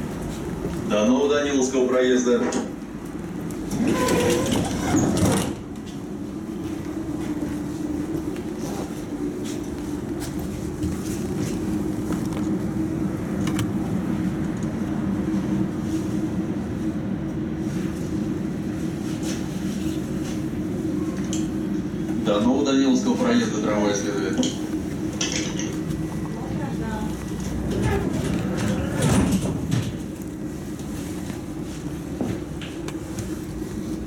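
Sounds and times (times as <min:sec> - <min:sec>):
tram doors shutting: 0:00.0 - 0:34.0
tram running low hum: 0:00.0 - 0:34.0.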